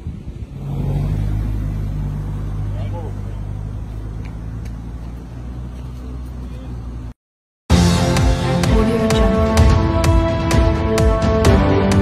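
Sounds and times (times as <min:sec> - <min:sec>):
vehicle engine running: 0:00.0 - 0:07.2.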